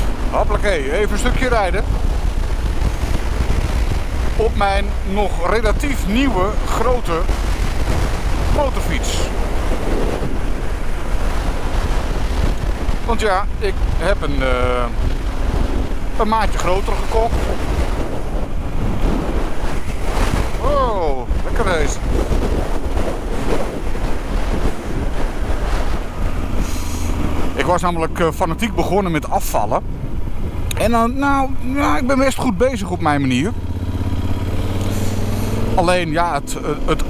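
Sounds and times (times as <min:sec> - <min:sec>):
motorcycle and road rumble: 0:00.0 - 0:37.0
wind buffeting microphone: 0:00.0 - 0:37.0.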